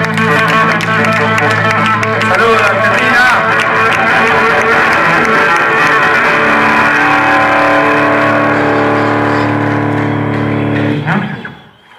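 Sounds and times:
live rock band playing: 0.0 - 11.5.

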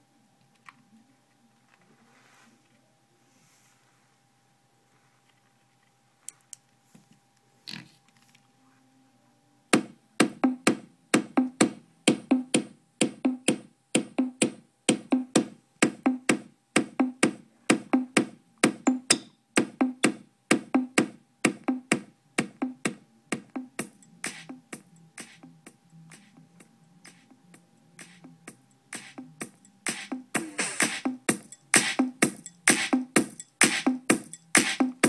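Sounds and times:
drum-machine beat from speaker: 9.8 - 35.0.

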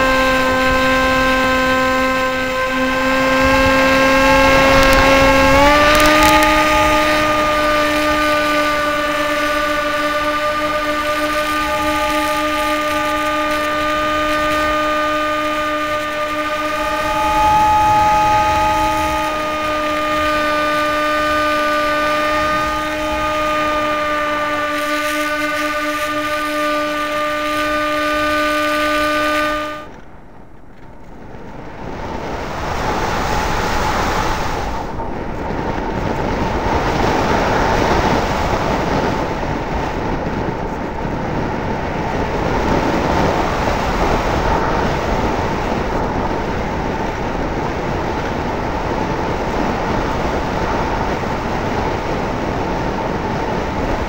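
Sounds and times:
model airplane motor and propeller: 0.0 - 54.0
wind noise: 0.0 - 54.0.

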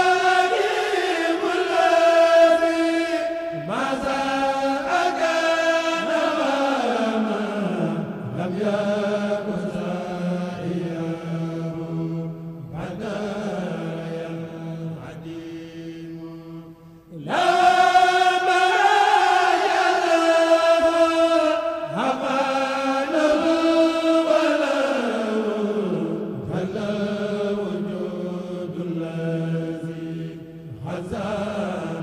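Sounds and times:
person chanting a cappella: 0.0 - 32.0.

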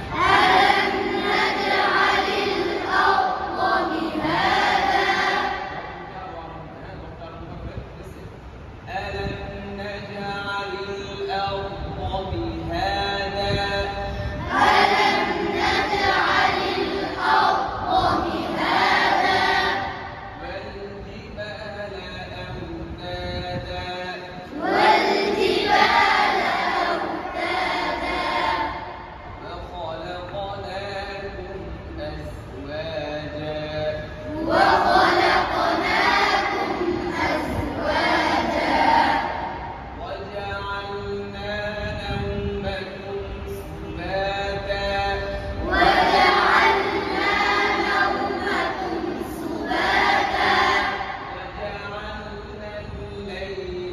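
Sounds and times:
boys chanting in unison: 0.0 - 7.1, 8.9 - 53.9.

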